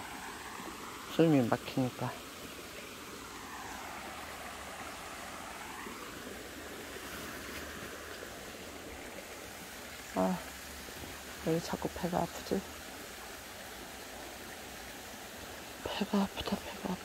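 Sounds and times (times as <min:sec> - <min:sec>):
water flowing over rocks: 0:00.0 - 0:17.0.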